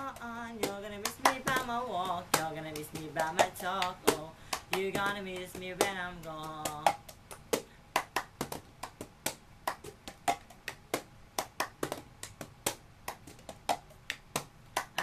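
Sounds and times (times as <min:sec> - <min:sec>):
hand claps: 0:00.0 - 0:15.0.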